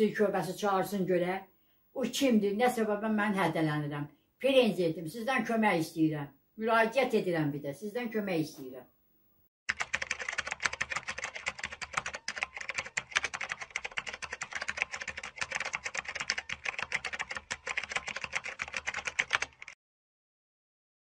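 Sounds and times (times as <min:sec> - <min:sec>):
keyboard keys clicking: 0:09.7 - 0:19.8.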